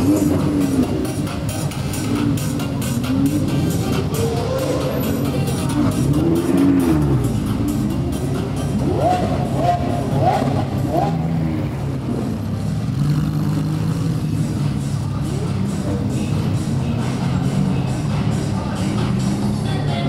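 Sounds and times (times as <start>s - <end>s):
voices: 0.0s - 12.7s, 14.2s - 20.0s
car engine revving and idling: 0.0s - 20.0s
music: 0.0s - 20.0s.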